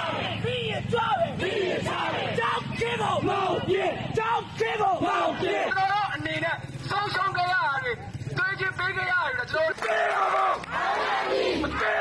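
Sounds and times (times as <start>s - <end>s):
crowd chanting slogans: 0.0s - 6.1s, 9.8s - 12.0s.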